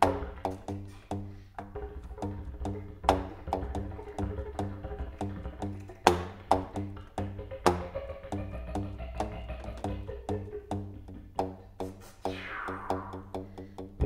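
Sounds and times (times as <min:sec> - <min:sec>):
didgeridoo drone: 0:00.0 - 0:11.4
contrabass flute: 0:12.2 - 0:13.5.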